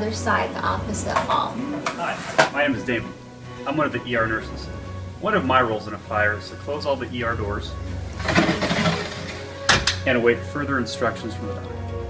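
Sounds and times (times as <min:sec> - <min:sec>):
sliding door rolling along track: 0:00.9 - 0:02.8, 0:05.8 - 0:10.1.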